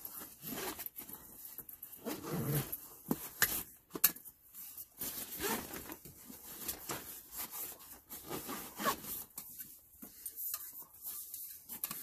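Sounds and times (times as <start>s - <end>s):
nylon fabric rustling: 4.8s - 9.4s.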